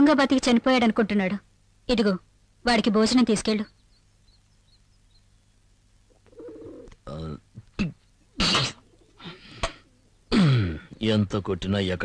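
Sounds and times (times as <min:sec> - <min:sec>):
faint high bird chirps: 0:03.1 - 0:06.9
dove cooing: 0:06.1 - 0:07.2, 0:08.2 - 0:11.0.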